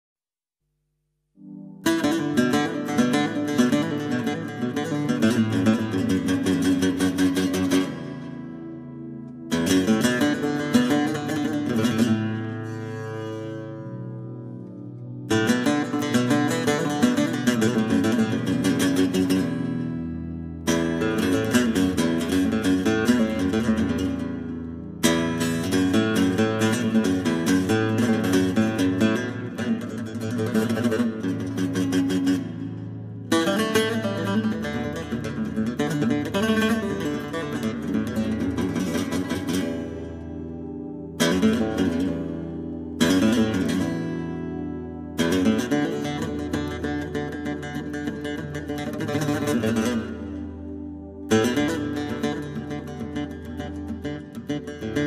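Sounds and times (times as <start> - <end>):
plucked mandole: 1.4 - 55.0.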